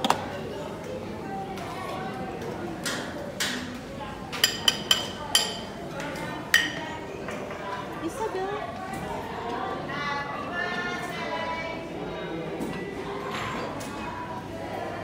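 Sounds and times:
people talking in a dining hall: 0:00.0 - 0:15.0
dishes and utensils clinking: 0:04.4 - 0:05.7.

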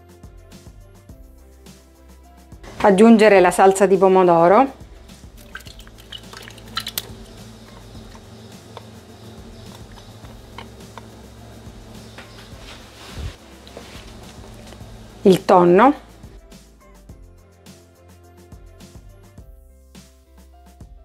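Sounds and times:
quiet background music: 0:00.0 - 0:21.0
sauce pouring into a jug: 0:05.3 - 0:10.1.

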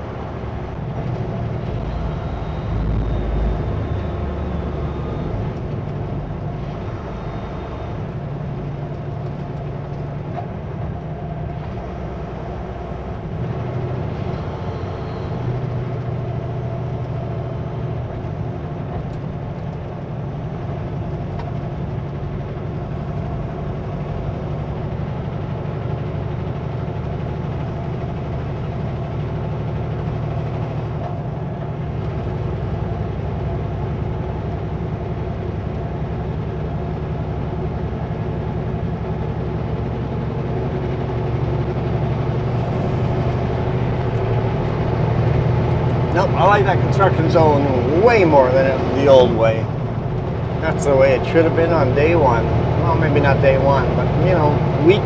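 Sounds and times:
road noise: 0:00.0 - 0:55.0
truck diesel engine running: 0:00.0 - 0:55.0.

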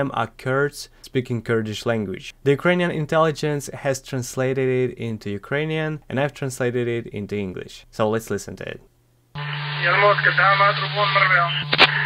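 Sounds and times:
low hum: 0:09.4 - 0:12.0
man speaking over radio: 0:09.8 - 0:12.0.

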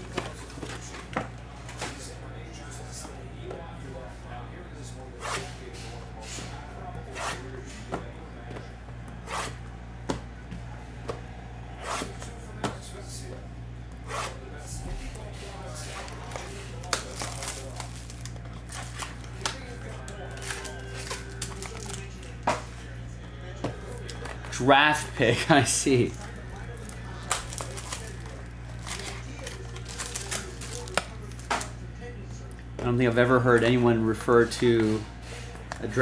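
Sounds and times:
foil packs crinkling: 0:00.0 - 0:02.2, 0:15.1 - 0:22.7, 0:23.8 - 0:31.8
low electrical hum: 0:00.0 - 0:36.0.

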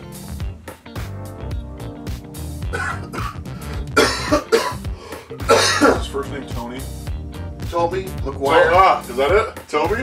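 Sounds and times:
man coughing: 0:02.6 - 0:06.2.

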